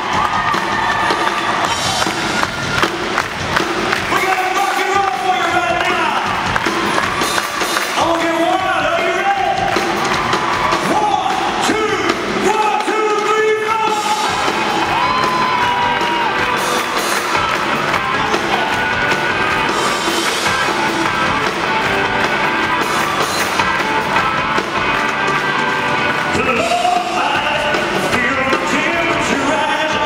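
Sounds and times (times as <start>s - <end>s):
rock and roll band playing: 0.0s - 30.0s
man singing: 26.3s - 30.0s.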